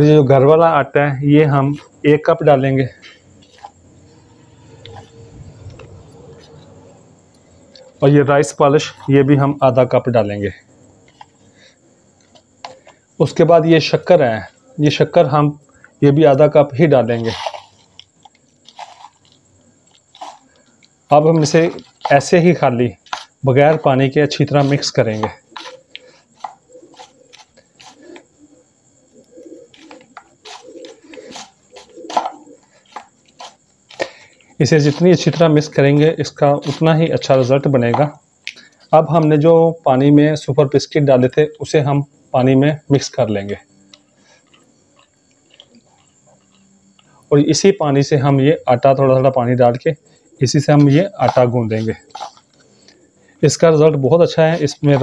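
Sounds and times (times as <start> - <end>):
powder scraping in plastic bowl: 17.1 - 28.2, 29.8 - 34.1, 34.7 - 38.1, 50.8 - 52.6
wet squishing of biscuits: 17.2 - 22.4, 44.3 - 47.2.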